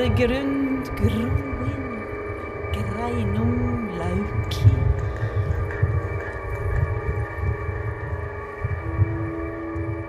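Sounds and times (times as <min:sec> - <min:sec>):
electronic ambient drone: 0:00.0 - 0:10.0
low rumble: 0:00.0 - 0:10.0.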